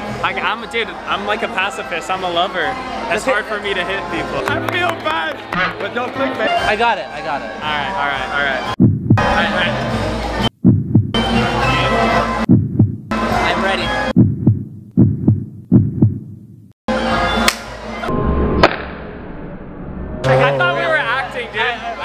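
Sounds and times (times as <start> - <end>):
crowd and voices: 0.0 - 10.5, 11.2 - 12.5, 20.2 - 22.0
heartbeat thumps: 8.8 - 9.4, 10.4 - 11.2, 12.5 - 13.1, 14.1 - 16.7.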